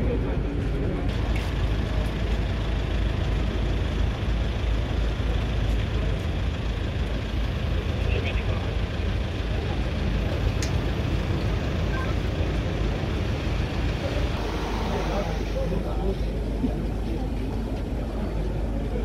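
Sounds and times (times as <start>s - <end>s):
crowd chatter: 0.0s - 19.0s
suv engine idling: 0.2s - 19.0s.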